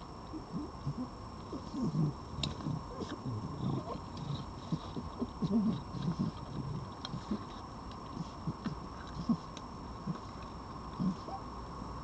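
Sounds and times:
crunchy clicks of dry food: 0.0 - 11.3
foxes grumbling: 0.3 - 11.5
low fox vocal sound: 0.3 - 11.5.

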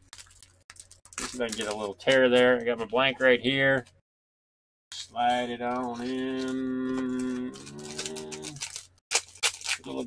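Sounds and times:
foil wrapper crinkling and tearing: 0.0 - 2.8, 4.9 - 10.0.

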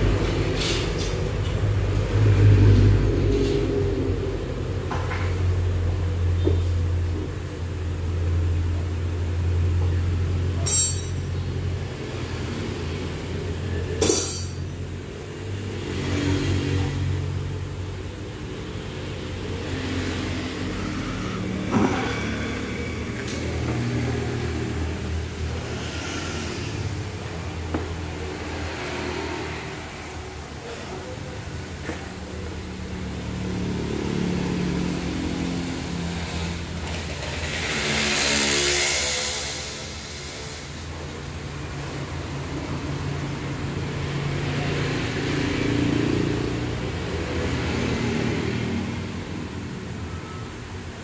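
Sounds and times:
workshop machinery humming: 0.0 - 51.0
sharp metallic clinks: 10.6 - 11.4, 14.0 - 14.8.

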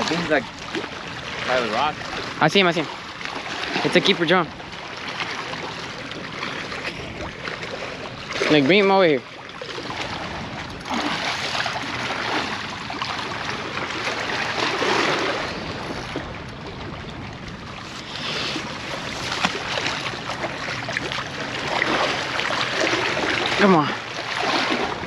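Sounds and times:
waves at rock jetty: 0.0 - 25.0
wind: 0.0 - 25.0.

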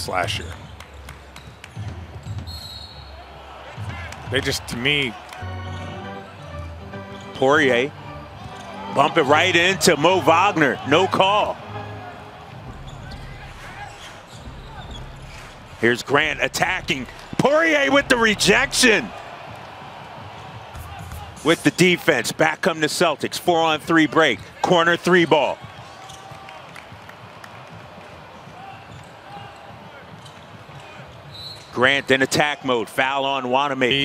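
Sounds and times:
arena crowd noise: 0.0 - 34.0
basketball bouncing on hardwood: 1.3 - 2.6.

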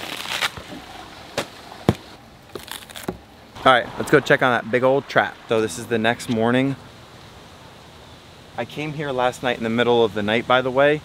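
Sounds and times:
lettuce leaves rustling and snapping: 0.0 - 3.3.

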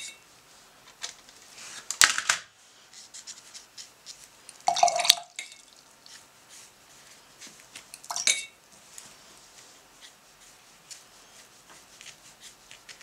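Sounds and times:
brush clinking against glass jar: 4.5 - 5.8, 7.9 - 8.6.

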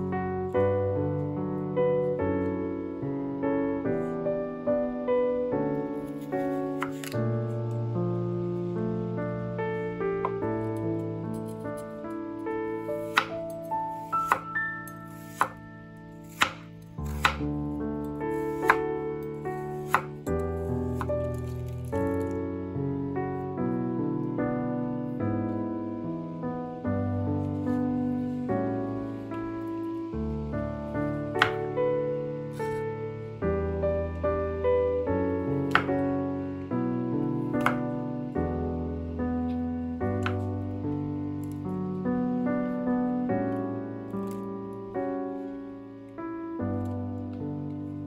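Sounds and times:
soft piano music: 0.0 - 48.0
knife slicing carrot on board: 6.1 - 7.2, 13.0 - 14.5, 15.1 - 15.6, 16.2 - 17.5, 18.4 - 18.9, 19.7 - 22.2, 31.4 - 31.6, 35.7 - 35.9, 37.6 - 37.8.

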